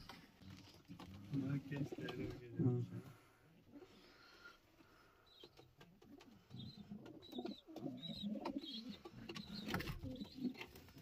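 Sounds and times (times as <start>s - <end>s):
pigeons cooing: 6.1s - 11.0s.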